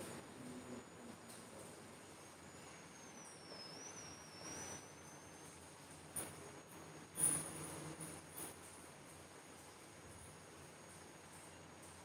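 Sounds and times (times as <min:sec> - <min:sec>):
thin high whine: 0:00.0 - 0:08.6.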